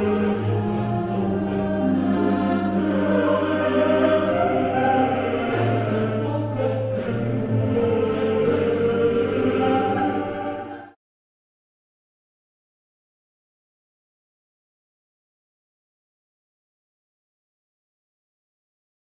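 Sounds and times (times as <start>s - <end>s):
choir singing harmonies: 0.0s - 11.0s.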